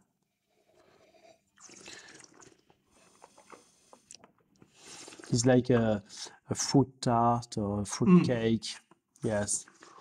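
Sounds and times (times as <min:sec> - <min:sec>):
faint sip through lips: 0:00.5 - 0:05.4.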